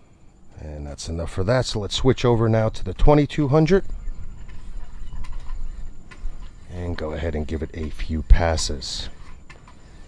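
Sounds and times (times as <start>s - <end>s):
steady low rumble: 0.0s - 9.5s.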